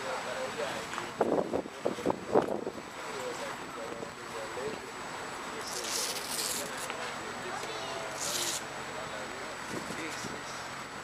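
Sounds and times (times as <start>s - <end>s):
people talking: 0.0s - 10.7s
street background noise: 0.0s - 11.0s.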